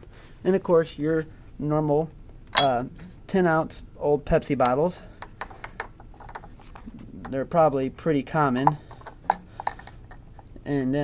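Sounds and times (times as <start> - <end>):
glass bottles clinking: 2.6 - 2.8, 4.6 - 7.4, 8.5 - 10.6.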